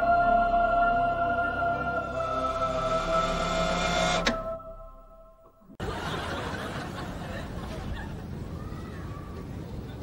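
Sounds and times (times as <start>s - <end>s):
choral music held chord: 0.0s - 6.2s.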